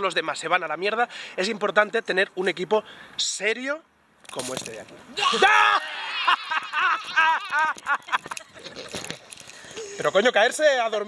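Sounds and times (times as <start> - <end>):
people whooping and cheering: 5.2 - 8.2.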